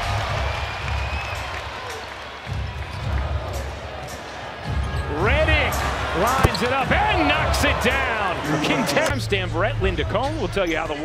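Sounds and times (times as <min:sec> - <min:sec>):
arena crowd murmur: 0:03.1 - 0:09.2.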